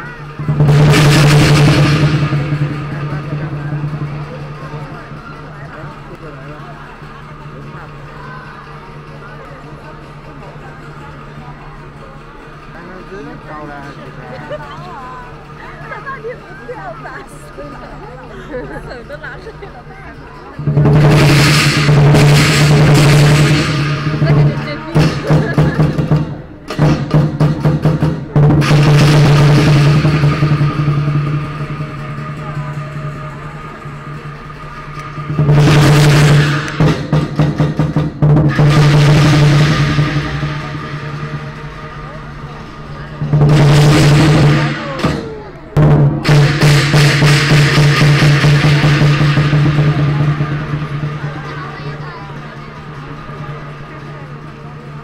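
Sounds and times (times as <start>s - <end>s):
cymbals crashing: 0.0s - 55.0s
large drums rolling: 0.0s - 55.0s
steady low drone: 0.0s - 55.0s.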